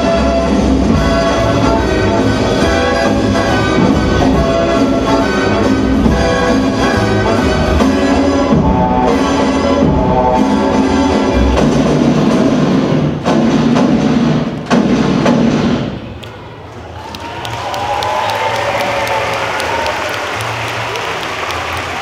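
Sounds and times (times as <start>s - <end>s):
dance music: 0.0s - 12.8s
audience applauding and cheering: 16.6s - 22.0s.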